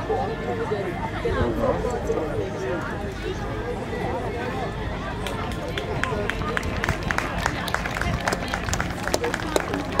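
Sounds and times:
crowd chatter: 0.0 - 10.0
spectators clapping: 5.2 - 10.0.

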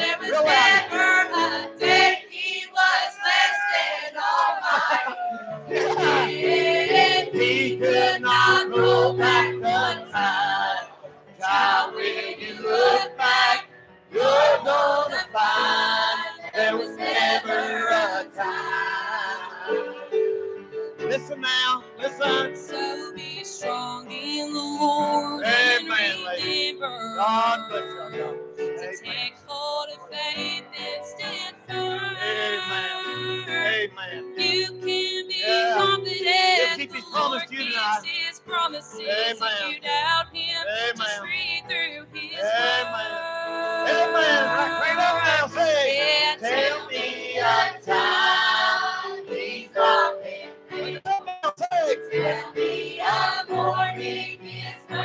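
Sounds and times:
choir singing: 0.0 - 21.2, 22.0 - 28.4, 30.0 - 39.6, 42.2 - 51.0, 52.0 - 55.0
women singing into microphones: 5.8 - 12.0, 22.6 - 28.2, 29.1 - 33.6, 34.4 - 45.2.

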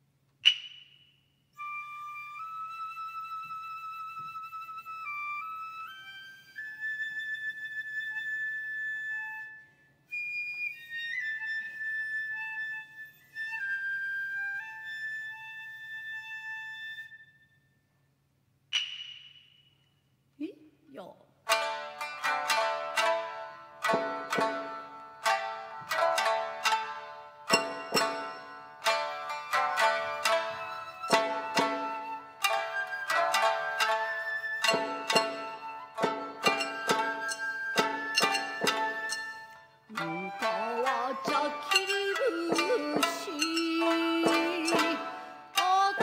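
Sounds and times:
bamboo flute melody: 0.4 - 17.8, 21.5 - 46.0
plucked shamisen notes: 21.4 - 46.0.

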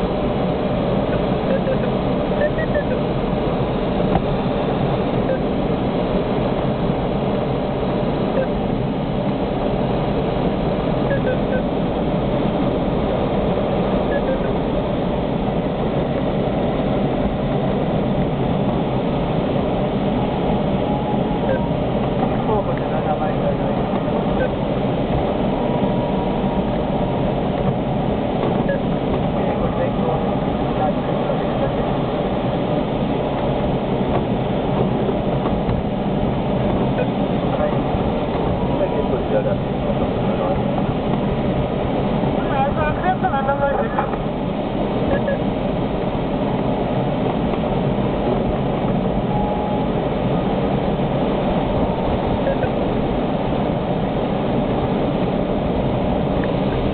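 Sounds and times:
airflow rushing around cockpit: 0.0 - 56.9.

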